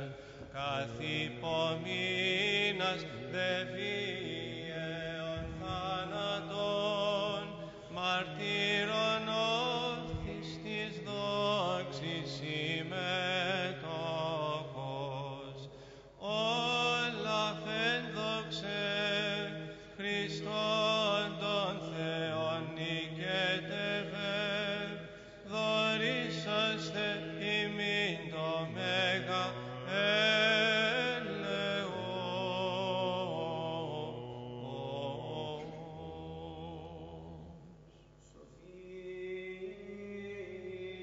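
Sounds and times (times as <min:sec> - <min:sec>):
ornamented vocal chant: 0:00.0 - 0:41.0
sustained vocal drone: 0:00.0 - 0:41.0.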